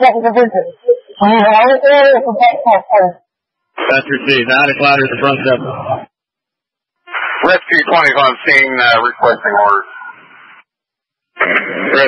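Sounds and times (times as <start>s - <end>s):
radio static hiss: 3.7s - 6.1s, 7.0s - 10.7s, 11.4s - 12.0s
man speaking over radio: 7.4s - 10.2s.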